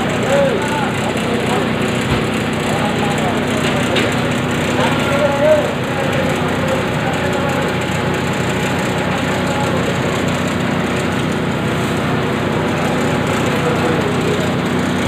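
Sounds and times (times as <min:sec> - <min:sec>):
grinding mill running: 0:00.0 - 0:15.0
low mechanical hum: 0:00.0 - 0:15.0.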